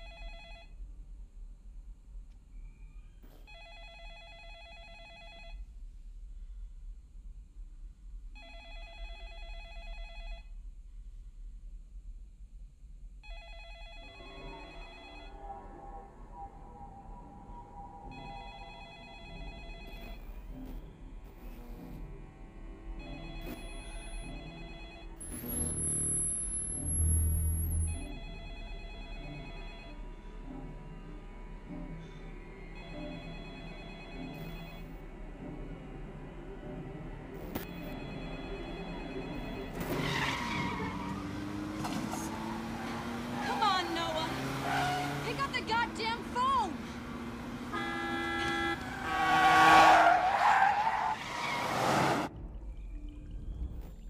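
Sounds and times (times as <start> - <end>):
telephone ringing: 0.0 - 0.8, 3.4 - 5.6, 8.4 - 10.5, 13.2 - 15.4, 18.1 - 20.5, 23.0 - 25.2, 27.8 - 30.0, 32.8 - 34.9, 37.6 - 39.8
music: 14.3 - 39.3, 52.3 - 54.0.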